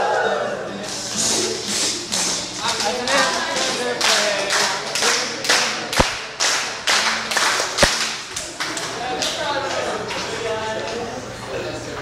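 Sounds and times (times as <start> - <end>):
group clapping in rhythm: 1.2 - 11.0
sharp loud cracks: 5.9 - 6.7, 7.6 - 8.3.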